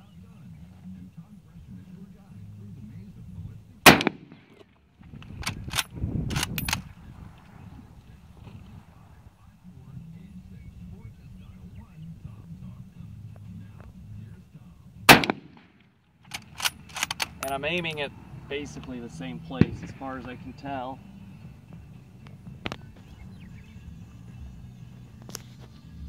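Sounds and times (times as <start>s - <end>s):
rifle shot: 3.8s - 4.6s, 15.1s - 17.6s, 19.5s - 20.2s
rifle bolt metallic clacks: 3.9s - 4.6s, 5.2s - 6.9s, 15.1s - 17.9s.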